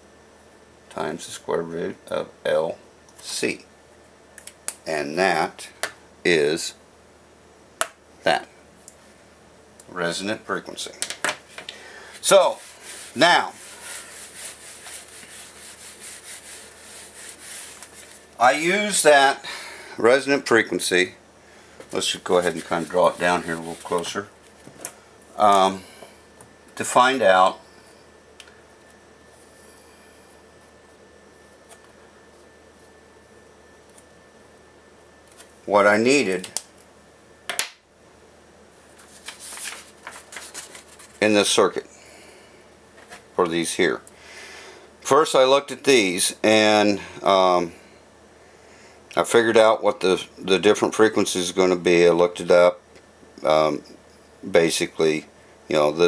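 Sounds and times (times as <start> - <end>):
paper rustling and sliding: 11.5 - 18.4, 21.9 - 24.6, 38.9 - 41.2
eraser rubbing on whiteboard: 12.5 - 18.2.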